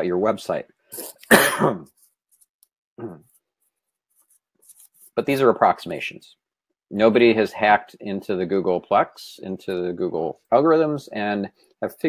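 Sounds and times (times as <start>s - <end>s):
man coughing: 1.0s - 2.0s, 3.0s - 3.2s
faint throat sound: 3.0s - 3.4s.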